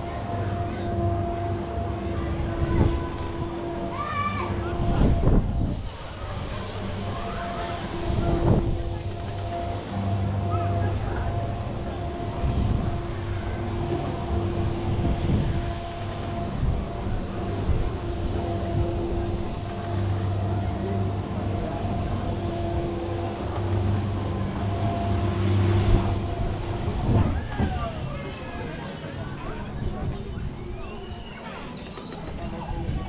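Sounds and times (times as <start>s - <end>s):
low mechanical hum: 0.0s - 30.1s
voices: 0.0s - 33.0s.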